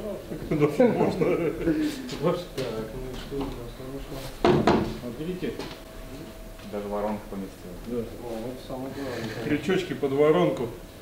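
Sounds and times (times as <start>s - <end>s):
hatch lid knocks: 4.4s - 5.0s.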